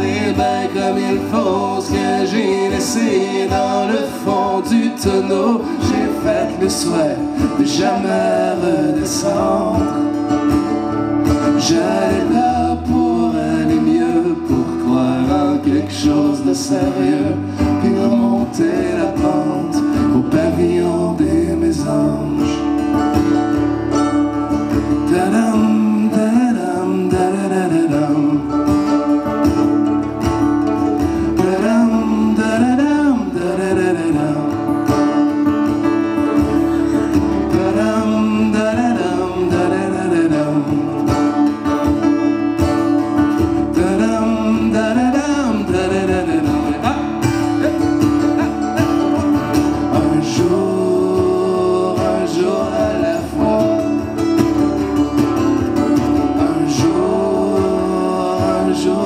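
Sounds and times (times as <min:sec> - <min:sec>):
men singing: 0:00.0 - 0:23.6, 0:24.8 - 0:29.4, 0:31.0 - 0:42.2, 0:43.0 - 0:59.0
mandolin: 0:00.0 - 0:59.0
strummed acoustic guitar: 0:00.0 - 0:59.0.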